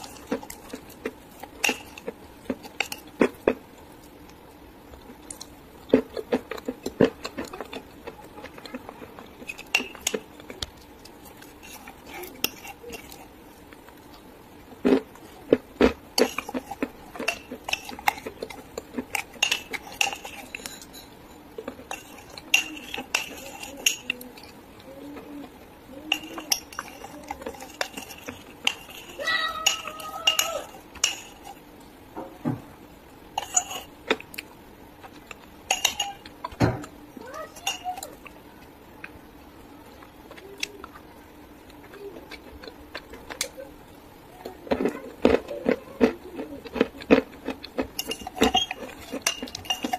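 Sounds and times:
person chewing crunchy food: 0:00.0 - 0:32.0, 0:33.2 - 0:37.0, 0:38.0 - 0:49.9
metal spoon clinking on glass: 0:35.7 - 0:36.3, 0:48.0 - 0:49.9
high-pitched voice sound: 0:37.2 - 0:38.2, 0:44.3 - 0:46.6.

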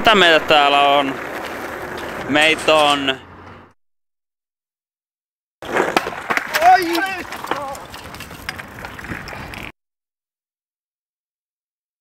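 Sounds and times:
skateboard rolling on pavement: 0:00.0 - 0:03.8, 0:05.6 - 0:09.8
skateboard clacks: 0:00.4 - 0:03.0, 0:05.6 - 0:09.7
person shouting: 0:06.6 - 0:07.8.

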